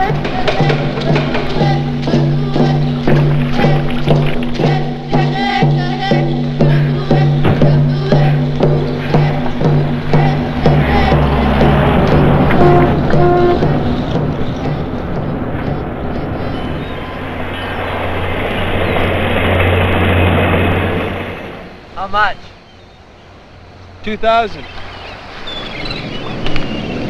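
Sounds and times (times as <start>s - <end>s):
drum beats: 0.0s - 17.6s
sustained low tone: 0.0s - 21.0s
car engine and road noise: 0.0s - 27.0s.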